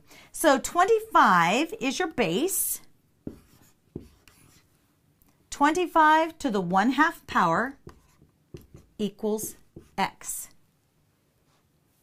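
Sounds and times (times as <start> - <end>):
marker stroke on whiteboard: 2.5 - 4.8, 6.6 - 10.6, 11.4 - 12.0.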